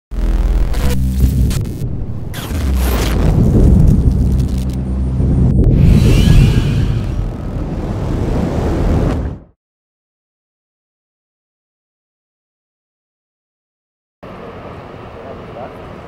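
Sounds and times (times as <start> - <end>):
heavy low rumbling hits: 0.1 - 9.5
music: 0.2 - 7.1
whooshes: 0.8 - 9.4.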